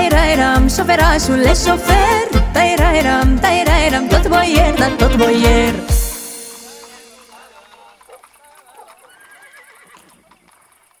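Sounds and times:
horse neighing: 0:08.6 - 0:10.4.

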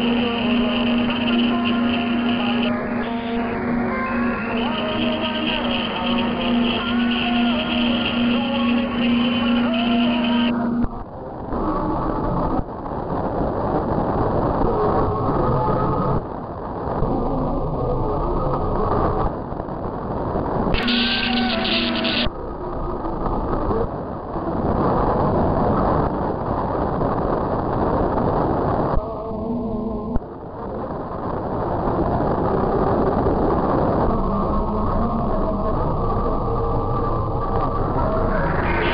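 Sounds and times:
faint wavering radio audio: 0:00.0 - 0:38.9
radio hiss and static: 0:00.0 - 0:38.9.

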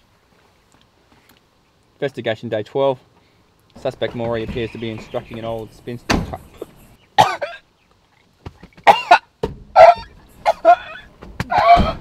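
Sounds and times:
man coughing: 0:06.5 - 0:07.6, 0:08.8 - 0:09.3, 0:10.4 - 0:11.1.

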